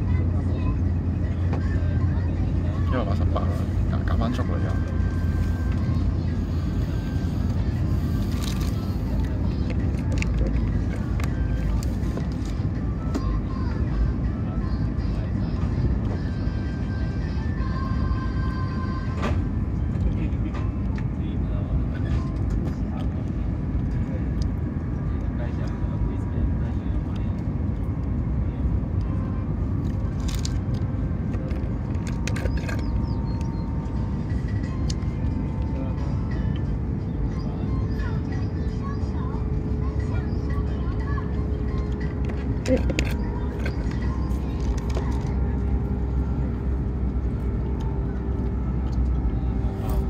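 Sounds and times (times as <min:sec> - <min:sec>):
train rumble inside cabin: 0:00.0 - 0:50.0.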